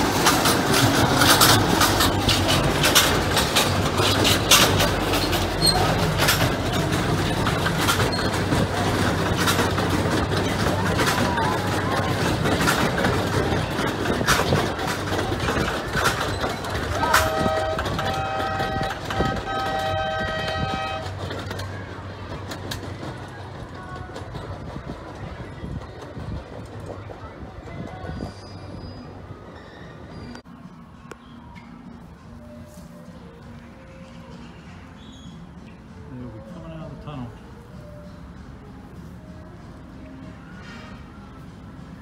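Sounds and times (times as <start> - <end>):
miniature train wheels clicking: 0.0 - 28.3
train horn short blasts: 17.0 - 21.2.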